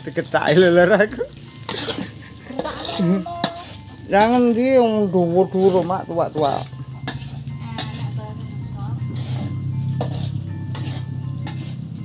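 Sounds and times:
metal spatula scraping wok: 0:00.0 - 0:12.0
rice sizzling in a wok: 0:00.0 - 0:12.0.

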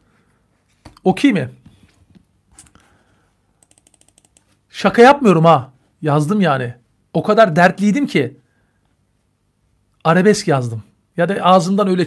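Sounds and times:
man speaking: 0:01.0 - 0:01.6, 0:04.7 - 0:08.4, 0:10.0 - 0:12.0
mouse scroll wheel ticking: 0:03.6 - 0:04.6.

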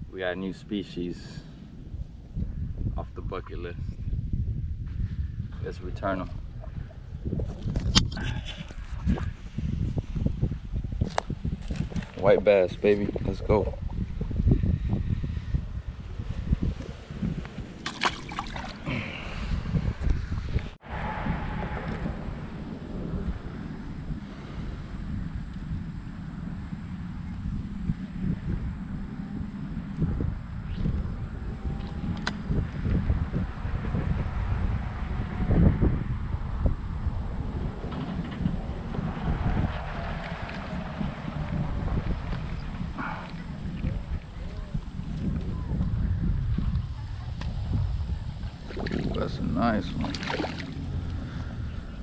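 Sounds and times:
wind buffeting microphone: 0:00.0 - 0:52.0
faint high whine: 0:20.8 - 0:52.0.

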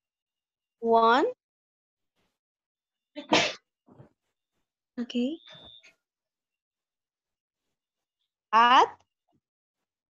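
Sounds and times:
person sneezing: 0:03.2 - 0:03.6.

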